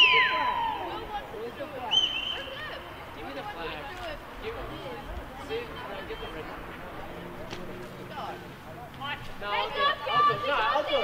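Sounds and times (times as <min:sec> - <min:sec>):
faint spectators' voices: 0:00.0 - 0:11.0.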